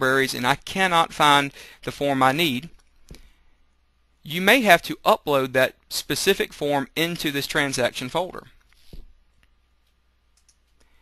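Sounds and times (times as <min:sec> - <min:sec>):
computer mouse clicks: 0:09.4 - 0:10.9.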